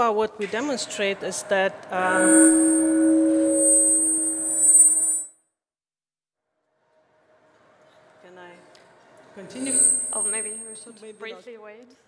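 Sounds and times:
steady electronic tone: 2.0s - 5.3s, 9.5s - 10.7s.

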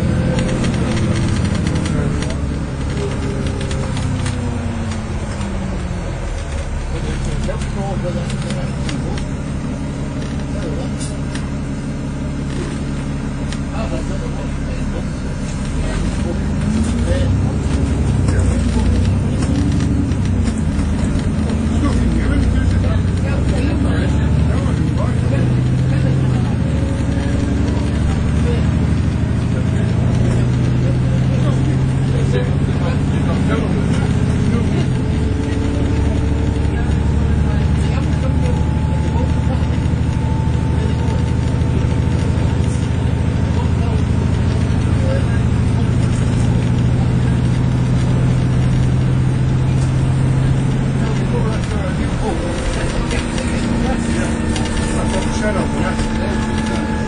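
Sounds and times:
bus diesel engine: 0.0s - 57.0s
thin rising drivetrain whine: 0.0s - 57.0s.

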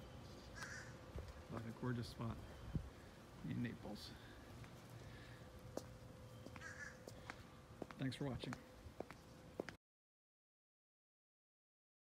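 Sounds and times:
bird calling faintly: 0.0s - 3.2s, 4.1s - 9.7s.

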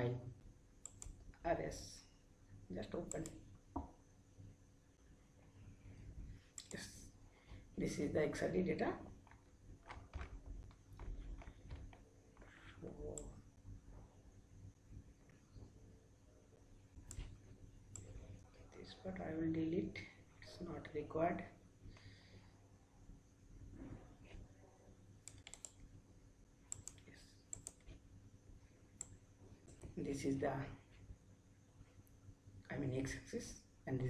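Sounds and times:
mouse and keyboard clicks: 25.3s - 25.8s, 26.7s - 28.0s.

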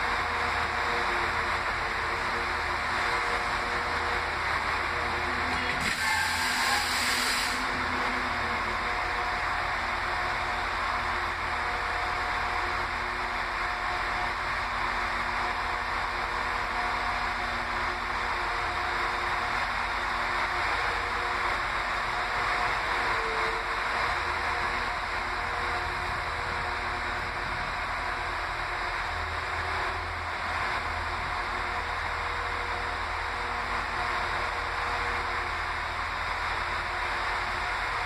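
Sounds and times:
diesel train engines idling: 0.0s - 38.0s
high hiss: 5.8s - 7.7s.

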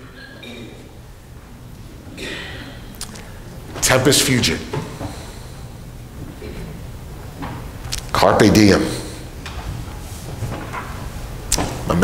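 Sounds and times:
low steady sound system hum: 0.0s - 12.0s
man speaking: 3.8s - 4.8s, 8.0s - 9.3s.

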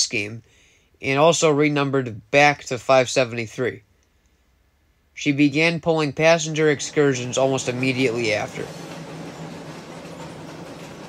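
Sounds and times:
train running on bridge: 6.3s - 11.0s.

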